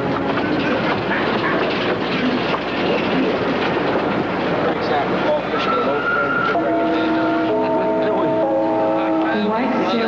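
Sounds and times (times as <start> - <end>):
subway train rattling and rumbling: 0.0 - 10.0.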